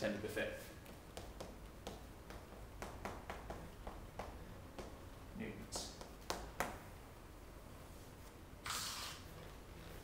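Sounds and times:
chalk tapping on chalkboard: 0:00.8 - 0:05.0, 0:05.7 - 0:06.8.

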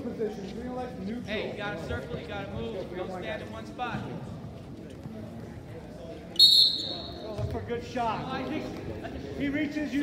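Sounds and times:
referee's whistle blast: 0:06.4 - 0:07.2.

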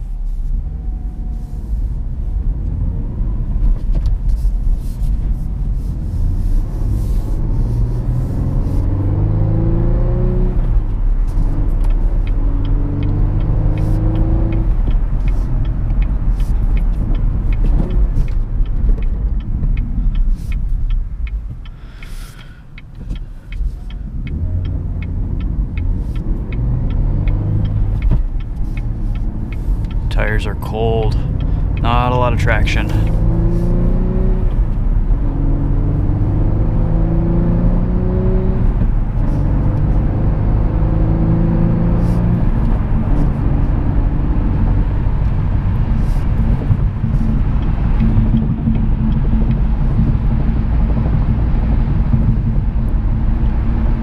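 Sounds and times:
tyre and road noise: 0:00.0 - 0:54.0
car engine revving hard: 0:24.3 - 0:48.6.

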